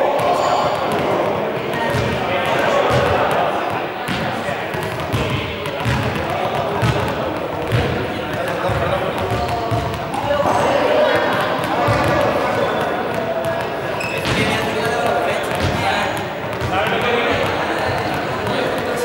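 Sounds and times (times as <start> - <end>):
indistinct voices echoing: 0.0 - 19.0
balls bouncing on hard floor: 0.2 - 19.0.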